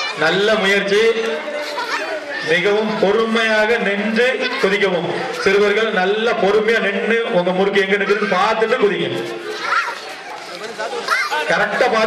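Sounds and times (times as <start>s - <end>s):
mixed chatter: 0.0s - 12.0s
man talking: 0.2s - 1.7s, 2.4s - 9.4s, 10.6s - 12.0s.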